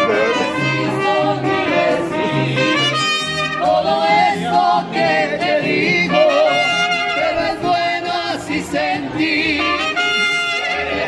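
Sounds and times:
brass band playing: 0:00.0 - 0:08.3, 0:09.0 - 0:11.0
person singing with vibrato: 0:00.0 - 0:11.0.

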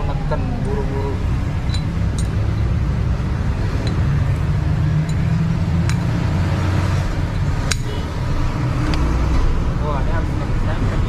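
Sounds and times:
low engine-like drone: 0:00.0 - 0:11.0.

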